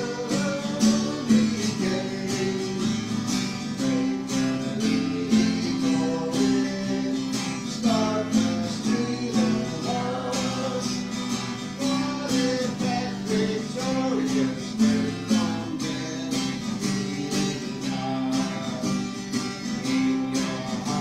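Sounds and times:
hymn melody line: 0.0s - 21.0s
strummed acoustic guitar: 0.0s - 21.0s.

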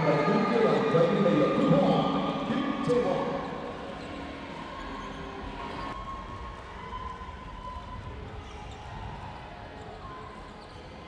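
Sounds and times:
faint hall background noise: 0.0s - 11.0s.

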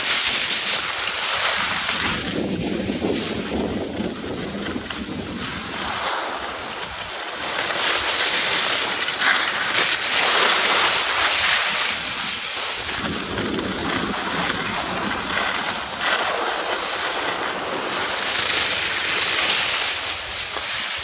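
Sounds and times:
skis scraping over snow: 0.0s - 21.0s
wind on microphone: 0.0s - 21.0s.

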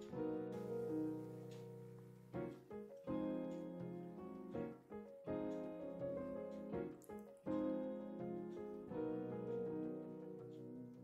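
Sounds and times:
slow piano music: 0.0s - 11.0s.

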